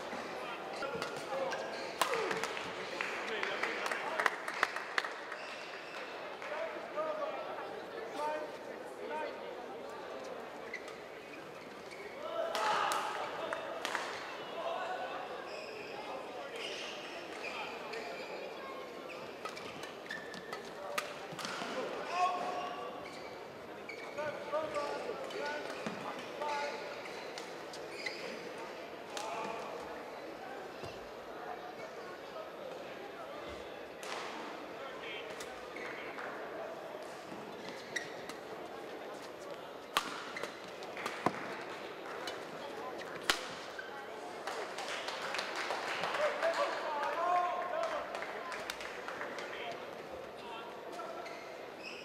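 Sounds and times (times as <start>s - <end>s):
shoes squeaking on court: 0.8s - 2.4s, 10.6s - 12.2s, 15.4s - 21.6s, 22.2s - 28.6s, 37.2s - 44.1s, 50.8s - 52.0s
racket hitting shuttlecock: 39.9s - 41.4s.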